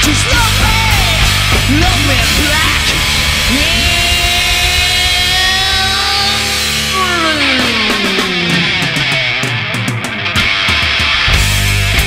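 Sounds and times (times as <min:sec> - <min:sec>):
bass and drums: 0:00.0 - 0:12.0
distorted electric guitar bending note: 0:00.0 - 0:12.0.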